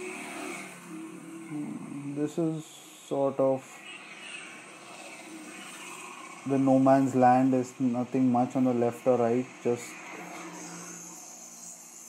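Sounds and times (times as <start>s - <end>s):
distant traffic hum: 0.0s - 12.0s
steady high hiss: 0.0s - 12.0s.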